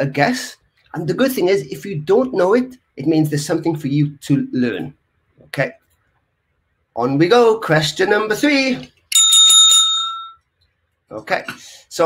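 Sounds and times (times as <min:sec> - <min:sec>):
bell ringing trill: 0:09.1 - 0:10.4.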